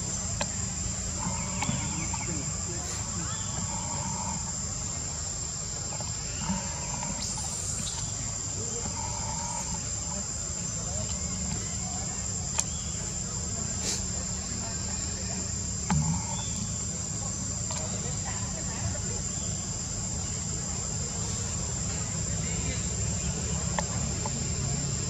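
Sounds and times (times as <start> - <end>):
high-pitched insect drone: 0.0 - 25.0.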